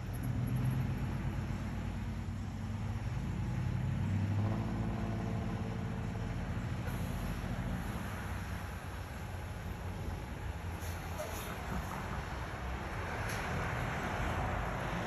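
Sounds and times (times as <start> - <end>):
low engine hum of vehicles: 0.0 - 15.0
pickup truck driving past: 0.0 - 15.0.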